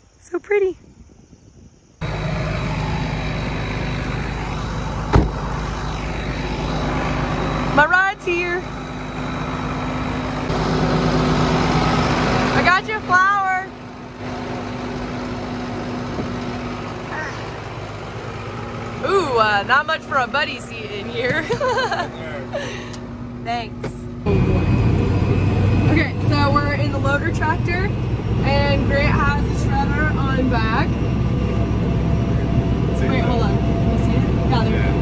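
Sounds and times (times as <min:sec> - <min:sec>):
tractor diesel engine idling: 0:02.0 - 0:35.0
sharp thump: 0:05.0 - 0:05.5.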